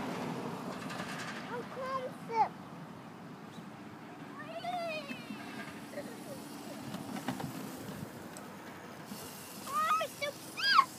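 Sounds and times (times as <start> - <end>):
electric dirt bike whir: 4.9 - 10.9
child's high rising call: 9.6 - 10.9.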